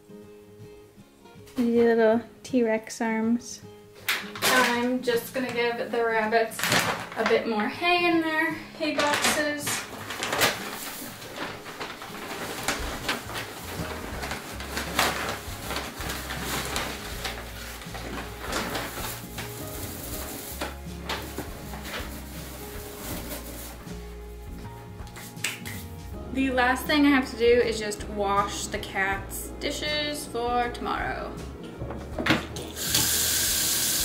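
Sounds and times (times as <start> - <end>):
background music with low bass: 0.0 - 34.0
hay and bag rustling: 6.1 - 24.9.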